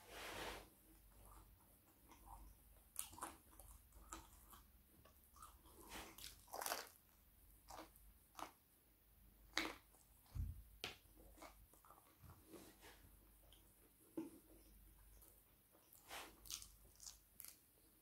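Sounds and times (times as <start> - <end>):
person biting and chewing pizza: 5.4 - 7.0, 16.0 - 17.6.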